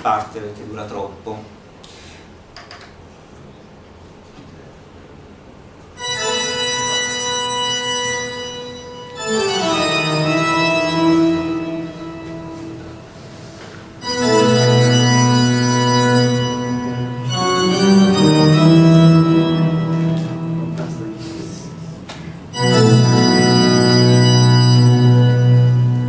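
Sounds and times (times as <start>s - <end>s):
organ music: 5.9s - 26.0s.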